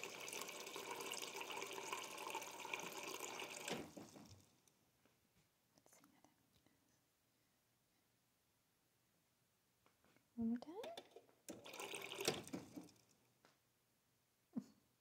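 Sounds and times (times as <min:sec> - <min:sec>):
water running: 0:00.0 - 0:04.6, 0:11.5 - 0:13.1.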